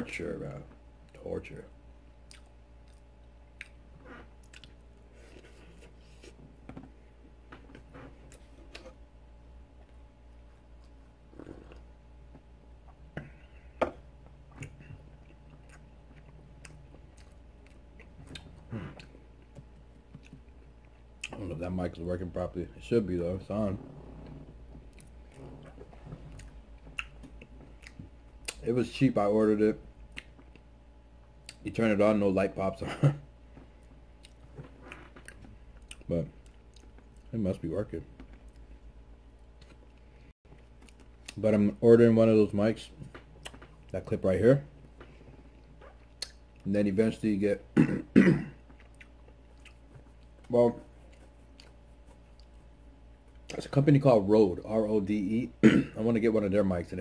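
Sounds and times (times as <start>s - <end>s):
faint low hum: 0.0s - 57.0s
soft wet mouth clicks: 2.2s - 3.8s, 26.3s - 28.6s, 30.1s - 30.7s, 46.0s - 46.4s
man chewing: 2.2s - 9.0s, 9.8s - 11.9s, 14.5s - 21.4s, 24.2s - 28.6s, 33.8s - 37.3s, 45.0s - 46.6s, 48.6s - 53.6s.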